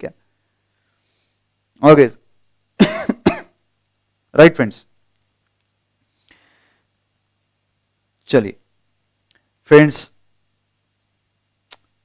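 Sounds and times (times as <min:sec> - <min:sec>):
man coughing: 0:02.8 - 0:03.6.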